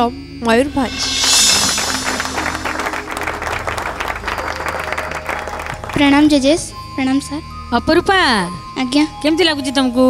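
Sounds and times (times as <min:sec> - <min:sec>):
stage music with crash: 0:00.6 - 0:05.9
audience applause: 0:01.0 - 0:06.3.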